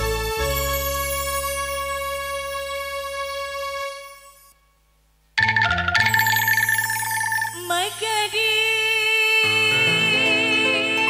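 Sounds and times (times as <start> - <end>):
steady bass: 0.0 - 3.8
woman singing: 7.5 - 11.0.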